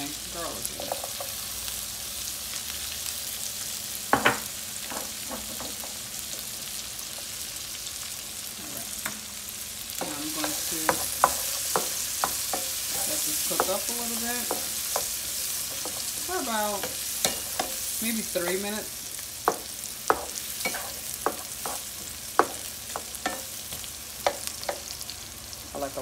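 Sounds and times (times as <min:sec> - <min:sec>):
vegetables sizzling in a pan: 0:00.0 - 0:26.0
utensil knocking on pan: 0:10.0 - 0:15.1, 0:19.5 - 0:23.5
utensil scraping pan: 0:10.0 - 0:18.8, 0:19.5 - 0:23.5.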